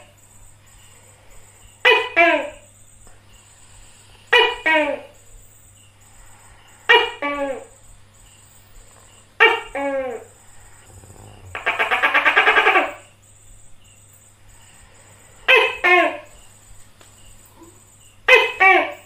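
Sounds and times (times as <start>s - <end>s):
gecko rattling call: 0.0s - 19.0s
high pulsing insect buzz: 0.0s - 19.0s.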